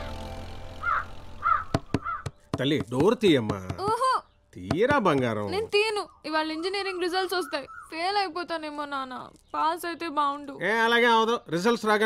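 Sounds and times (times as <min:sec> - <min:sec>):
held music chord: 0:00.0 - 0:01.4
crow cawing: 0:00.8 - 0:02.4.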